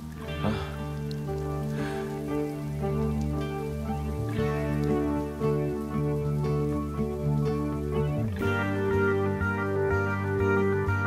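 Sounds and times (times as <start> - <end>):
heavy rain splashing on ground: 0.0 - 11.0
slow film score: 0.0 - 11.0.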